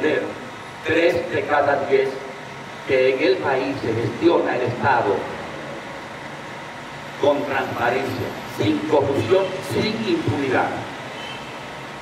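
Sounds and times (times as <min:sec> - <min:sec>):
man speaking into a microphone: 0:00.0 - 0:02.3, 0:02.9 - 0:05.4, 0:07.2 - 0:11.0.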